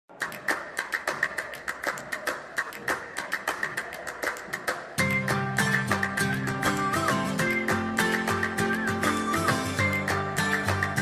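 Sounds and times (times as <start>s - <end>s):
sharp handclaps: 0.1s - 11.0s.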